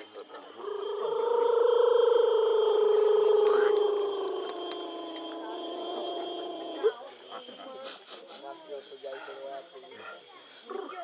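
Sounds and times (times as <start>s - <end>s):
lower voice chanting: 0.0s - 7.4s
person chanting long note: 1.2s - 6.9s.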